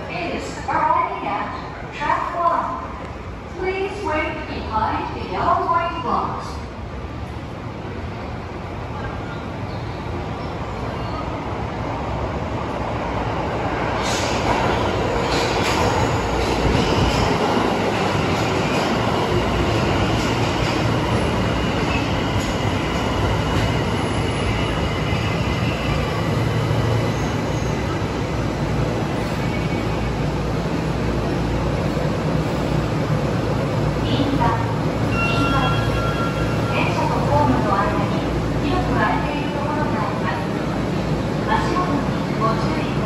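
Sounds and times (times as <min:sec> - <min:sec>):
subway train arriving: 0:00.0 - 0:43.0.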